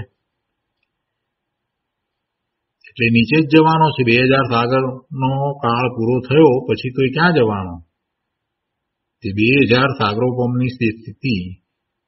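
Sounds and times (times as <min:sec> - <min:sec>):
man lecturing: 0:02.8 - 0:07.9, 0:09.2 - 0:11.7.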